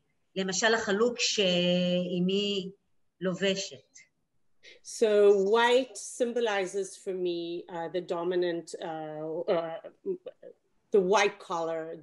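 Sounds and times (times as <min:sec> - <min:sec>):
woman speaking: 0:00.4 - 0:04.1, 0:04.7 - 0:12.0.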